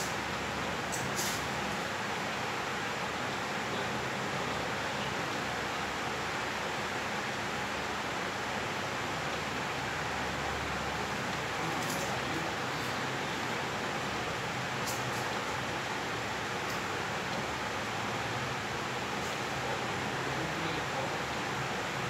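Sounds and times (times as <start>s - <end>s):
steady even hiss: 0.0s - 22.0s.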